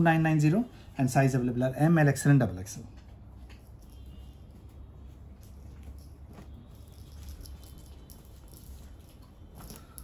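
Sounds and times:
cloth rustling: 3.3 - 10.0.

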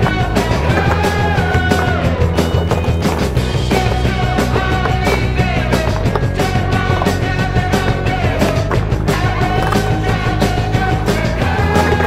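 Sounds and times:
rock music: 0.0 - 12.0
skateboard on concrete: 0.0 - 12.0.

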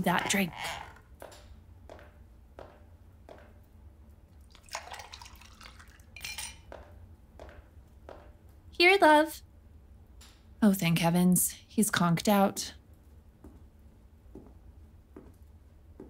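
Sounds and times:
liquid pouring: 4.4 - 6.6
bright glass clink: 6.2 - 6.7
glassware clinks and knocks: 6.2 - 6.7.

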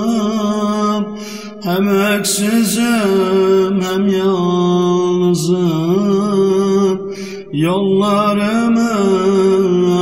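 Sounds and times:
man singing a hymn: 0.0 - 10.0
singer breathing in: 1.1 - 1.6, 7.1 - 7.5.

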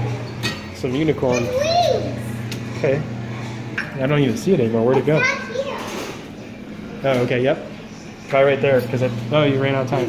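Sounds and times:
child speaking: 0.9 - 2.4, 4.9 - 6.3.

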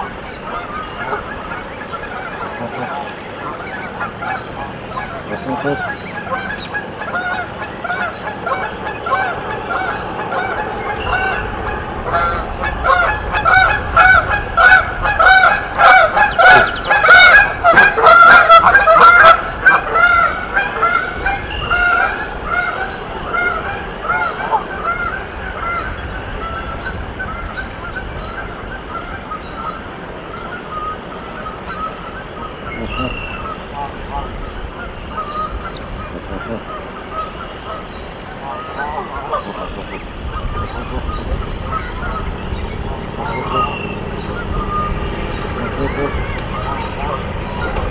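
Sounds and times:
geese honking: 0.0 - 47.9.

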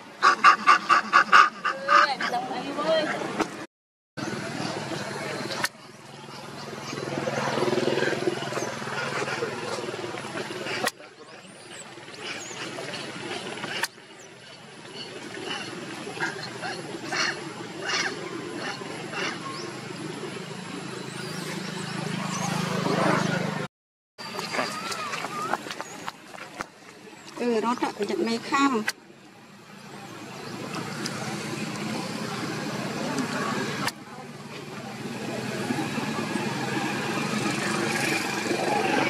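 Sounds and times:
monkeys calling and screaming: 0.0 - 3.4, 4.2 - 23.6, 24.2 - 29.0, 34.9 - 39.0.

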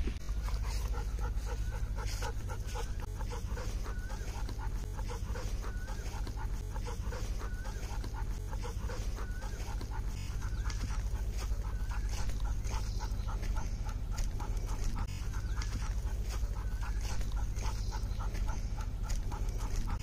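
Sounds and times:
dog panting: 0.0 - 20.0.

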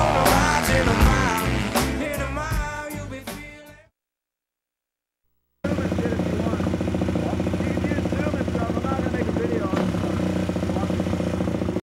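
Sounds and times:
motocross bike engine running: 5.6 - 11.8.

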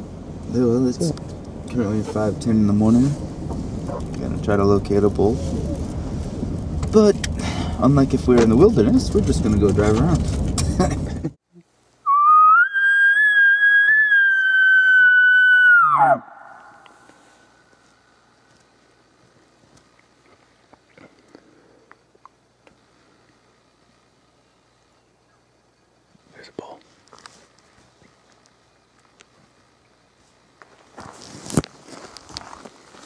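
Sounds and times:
elk bugle call whistle: 12.0 - 17.0.

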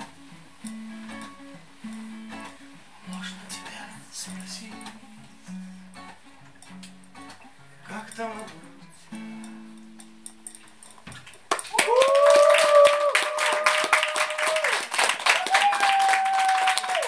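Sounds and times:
acoustic guitar chord ringing: 0.0 - 11.0
audience applause: 11.4 - 17.0
cheering shouts: 11.7 - 17.0.

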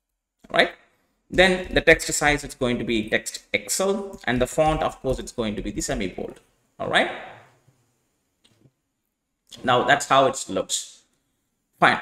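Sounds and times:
man speaking: 0.5 - 7.4, 9.5 - 11.0, 11.8 - 12.0.

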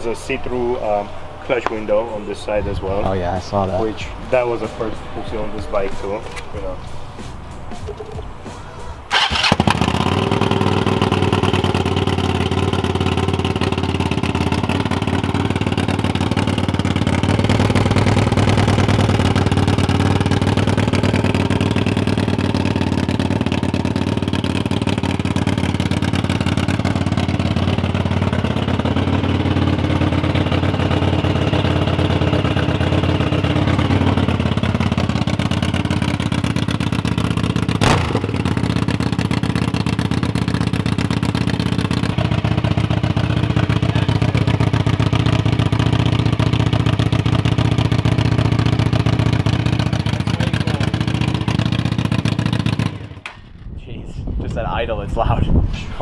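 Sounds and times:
motorcycle engine idling: 3.8 - 53.8.

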